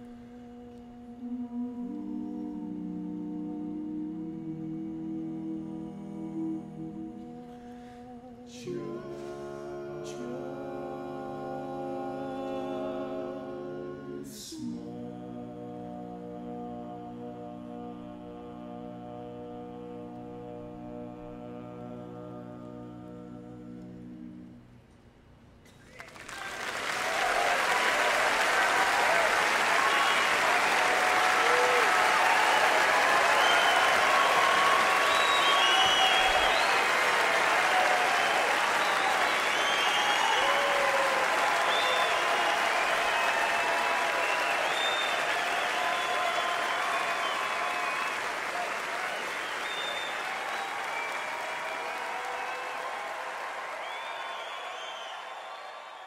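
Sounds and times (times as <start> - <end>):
audience applauding: 25.8 - 56.0
voices cheering: 26.0 - 56.0.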